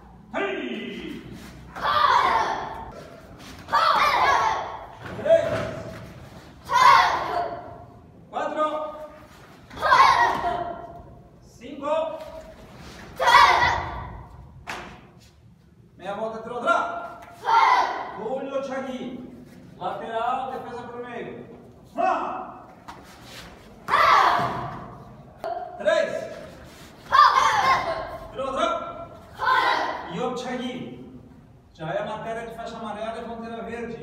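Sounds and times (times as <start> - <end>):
children shouting together: 1.8 - 2.9, 3.7 - 4.9, 6.6 - 7.8, 9.8 - 10.8, 13.2 - 14.2, 17.4 - 18.2, 23.9 - 24.7, 27.1 - 28.2, 29.4 - 30.1.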